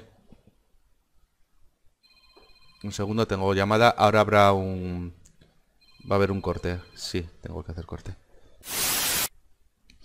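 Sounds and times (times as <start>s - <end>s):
short burst of hiss: 8.6s - 9.3s.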